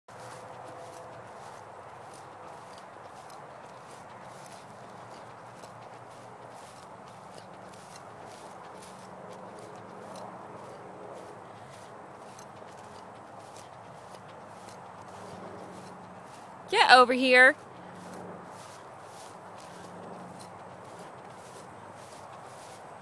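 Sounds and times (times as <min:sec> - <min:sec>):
footsteps in grass: 0:00.1 - 0:23.0.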